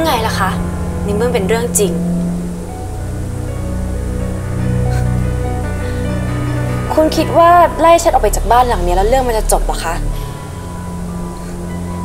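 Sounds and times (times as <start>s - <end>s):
sustained background music chords: 0.0s - 12.0s.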